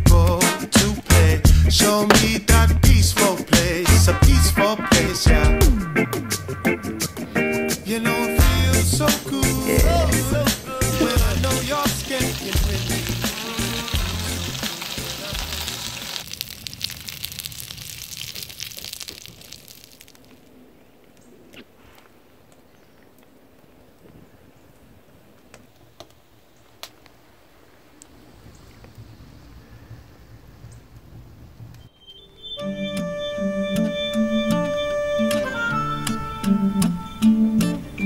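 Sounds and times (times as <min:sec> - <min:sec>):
music with bass beat: 0:00.0 - 0:15.6
campfire crackling: 0:00.0 - 0:24.1, 0:24.8 - 0:32.0
low outdoor rumble: 0:07.8 - 0:21.6
potatoes sizzling in a pot: 0:09.9 - 0:20.2.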